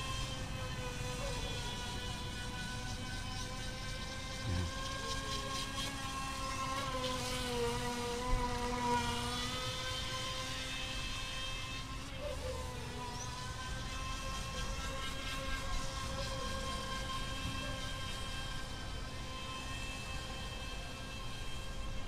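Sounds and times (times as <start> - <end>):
electric motor whining: 0.0 - 22.0.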